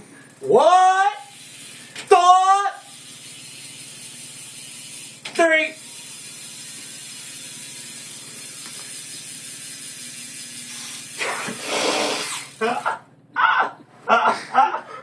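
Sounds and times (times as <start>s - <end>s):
bicycle freewheel hub ticking: 0.3s - 11.2s, 12.3s - 12.9s.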